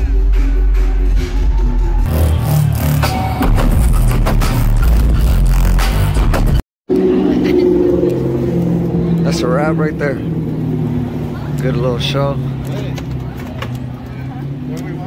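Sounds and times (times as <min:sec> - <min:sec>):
loud dubstep dj set: 0:00.0 - 0:06.6
heavy bass: 0:00.0 - 0:15.0
people talking outside: 0:06.9 - 0:15.0.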